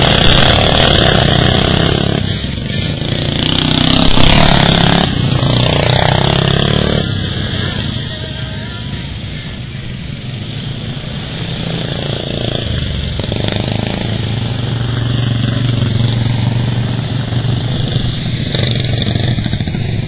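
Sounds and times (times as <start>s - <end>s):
racing lawn mower engines: 0.0s - 20.0s.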